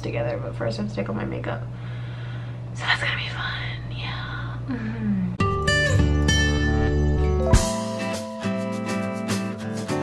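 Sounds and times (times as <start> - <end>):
steady low hum: 0.0 - 5.5
woman whispering: 2.8 - 5.4.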